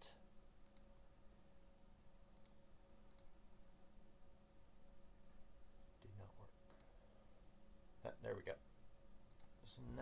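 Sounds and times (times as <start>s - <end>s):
faint steady hum: 0.0s - 10.0s
faint sharp clicks: 0.6s - 0.9s, 2.3s - 3.3s, 9.2s - 9.6s.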